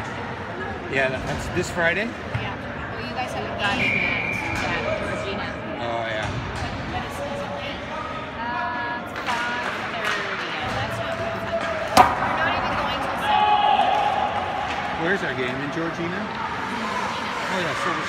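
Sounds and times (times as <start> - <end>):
voices in the stands: 0.0 - 18.0
sharp crack of hockey hit: 11.9 - 12.4.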